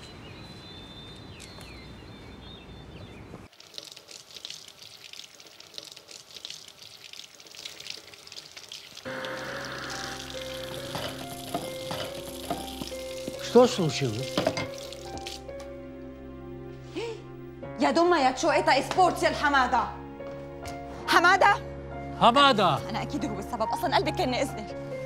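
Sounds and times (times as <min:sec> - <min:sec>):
crackling sizzle: 0:03.5 - 0:15.8.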